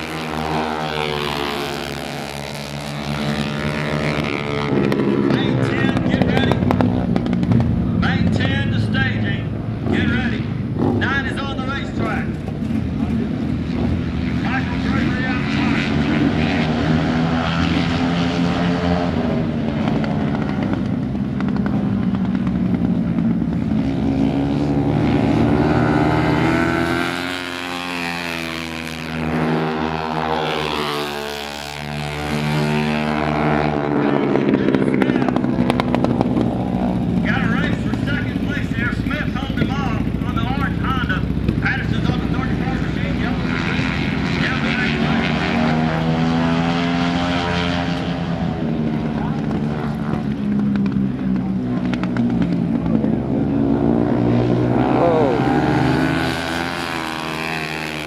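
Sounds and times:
racing motorcycles passing by: 0:00.0 - 0:58.0.

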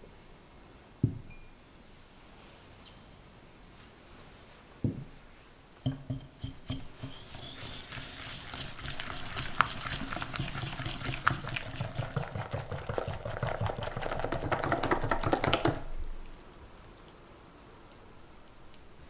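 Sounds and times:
whisk tapping glass bowl: 0:05.8 - 0:15.8
rapid wet whisking: 0:05.9 - 0:15.9.

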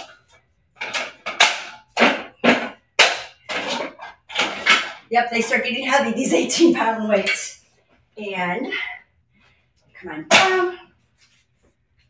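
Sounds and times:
weight plates shifting: 0:00.0 - 0:07.6.

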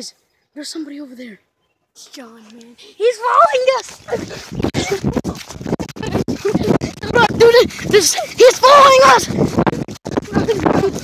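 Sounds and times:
breathless laughing and panting: 0:04.0 - 0:08.4.

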